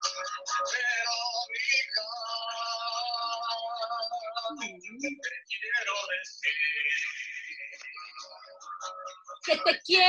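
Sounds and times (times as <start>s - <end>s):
person singing: 0.0s - 10.0s.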